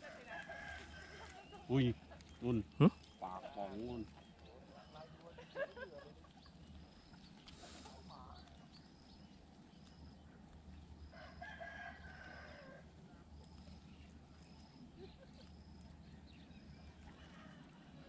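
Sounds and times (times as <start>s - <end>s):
drawn-out animal call: 0.0s - 18.0s.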